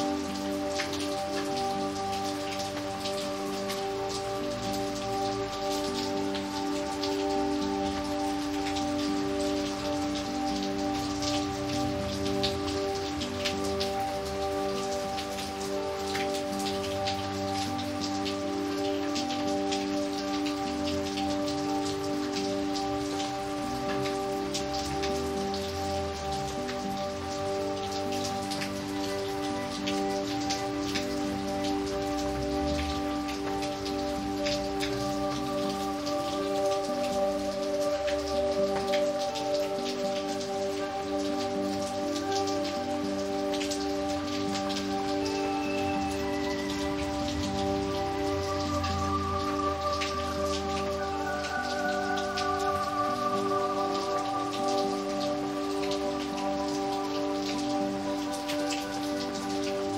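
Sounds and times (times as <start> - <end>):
rain on wet pavement: 0.0 - 59.9
soft music of held chords: 0.0 - 59.9.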